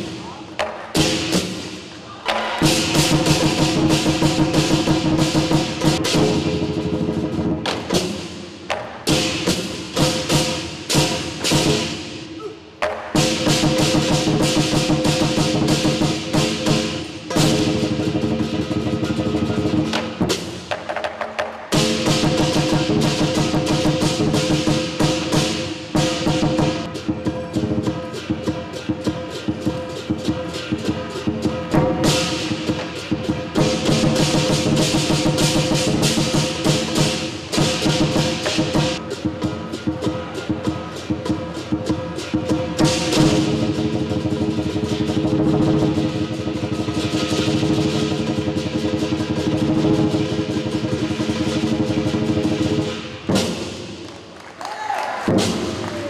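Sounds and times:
cymbals crashing: 0.0 - 12.5, 21.7 - 54.1
large drum beaten fast: 0.0 - 20.9, 21.7 - 53.9, 55.3 - 55.9.

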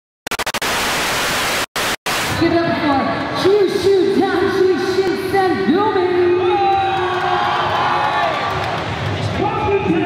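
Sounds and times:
white-noise static hiss: 0.3 - 2.5.

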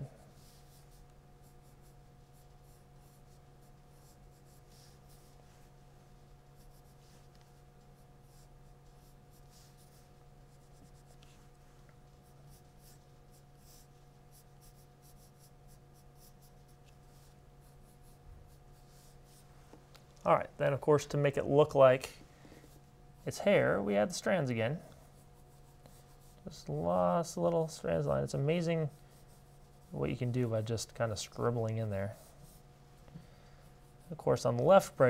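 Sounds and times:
steady low hum: 0.0 - 35.0
pencil scratching on paper: 0.3 - 5.8, 6.4 - 19.4, 25.0 - 26.8, 27.4 - 30.8, 31.4 - 32.7, 33.5 - 35.0.

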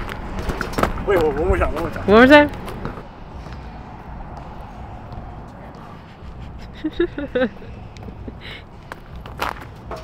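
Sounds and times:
person laughing: 6.0 - 8.7.

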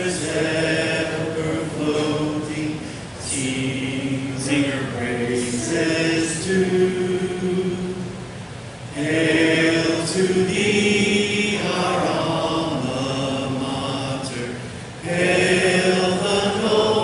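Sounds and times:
crowd singing together: 0.0 - 8.3, 8.9 - 17.0.

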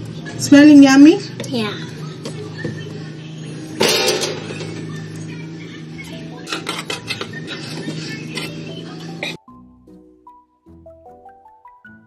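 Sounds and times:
metal spoons clinking and scraping: 3.8 - 4.8, 6.4 - 8.6
metal tray clatter: 3.8 - 4.8, 6.4 - 7.7
background music: 6.0 - 12.0.

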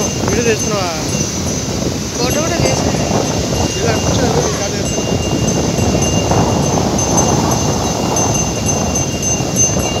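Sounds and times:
sea surf breaking over rocks: 0.0 - 10.0.

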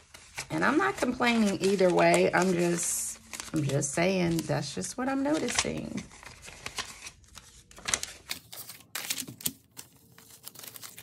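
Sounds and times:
paper bills rustling: 0.0 - 11.0.

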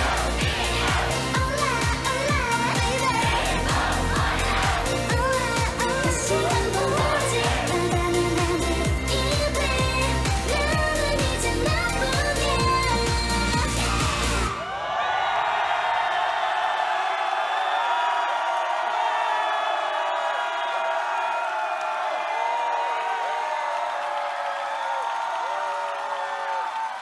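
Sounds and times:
audience cheering: 0.0 - 8.6, 13.8 - 27.0
pop song with heavy bass: 0.0 - 14.6.

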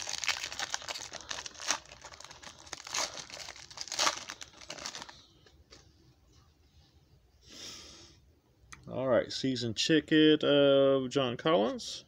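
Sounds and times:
foil wrapper crinkling and tearing: 0.0 - 5.2.

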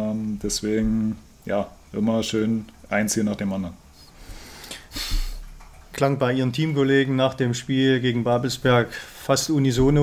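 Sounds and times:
low room sound: 0.0 - 10.0
noisy breath in: 3.9 - 5.4, 8.9 - 9.3.

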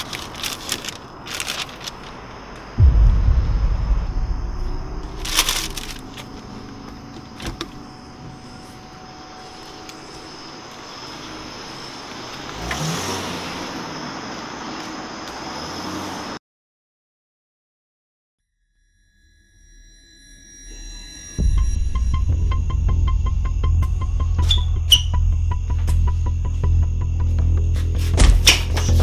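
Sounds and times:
short burst of noise: 2.8 - 7.3.

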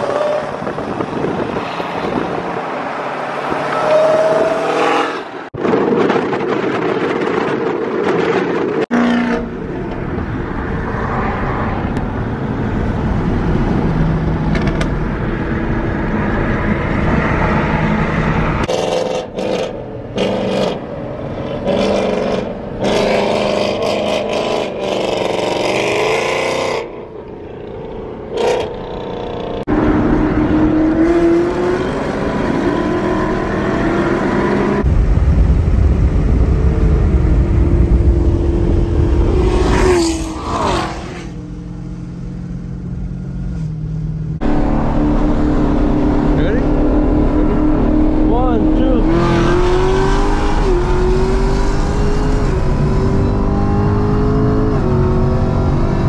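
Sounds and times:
road noise: 0.0 - 56.0
car engine revving: 44.4 - 56.0.

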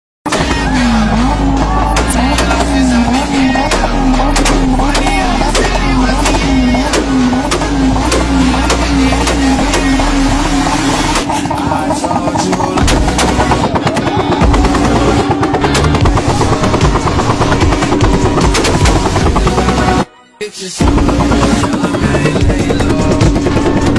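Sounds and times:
exhaust pops and bangs: 0.3 - 20.0, 20.8 - 23.9
car engine at high revs: 0.3 - 20.1, 20.8 - 23.9.

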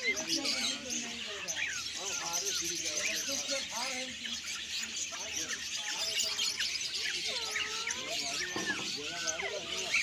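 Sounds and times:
many birds chirping: 0.0 - 10.0.

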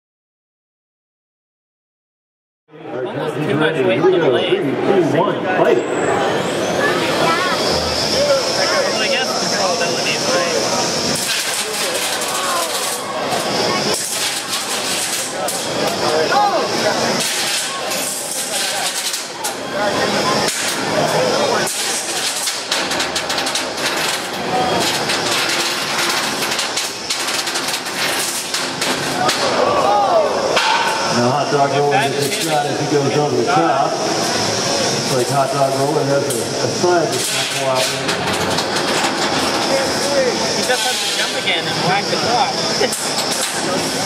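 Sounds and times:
crowd chatter: 2.7 - 44.0
spinning blade whining: 6.0 - 29.5
robots knocking and clattering: 21.6 - 29.4.

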